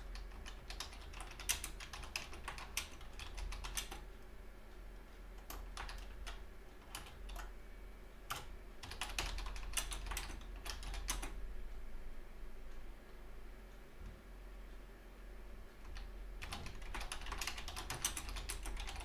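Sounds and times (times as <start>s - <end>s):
typing on computer keyboard: 0.0s - 4.1s, 5.4s - 7.5s, 8.3s - 11.4s, 15.8s - 19.0s
low steady hum: 0.0s - 19.0s.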